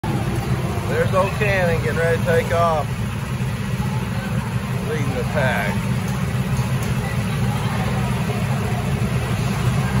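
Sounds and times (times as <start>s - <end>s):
go-kart engines idling: 0.0s - 10.0s.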